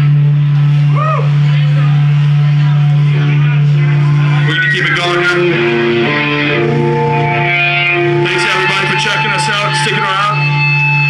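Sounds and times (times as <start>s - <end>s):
electric guitar with effects: 0.0s - 11.0s
low drone: 0.0s - 11.0s.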